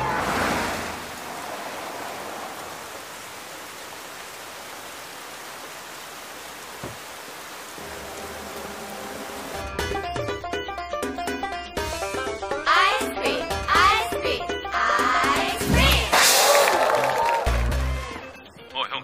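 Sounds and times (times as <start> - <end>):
crowd cheering: 0.0 - 2.8, 15.8 - 18.4
rain falling on wet pavement: 0.0 - 9.8
music: 8.0 - 19.0.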